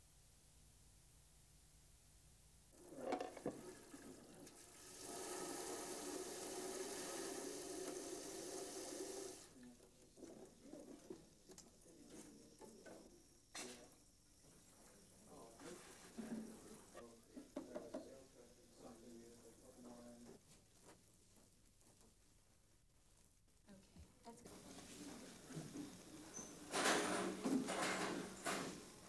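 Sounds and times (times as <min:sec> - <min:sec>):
tap water running into sink: 0:02.8 - 0:09.5.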